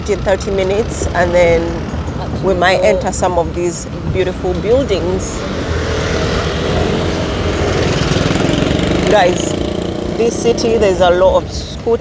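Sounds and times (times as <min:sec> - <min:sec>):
scooter and motorbike engines: 0:00.0 - 0:12.0.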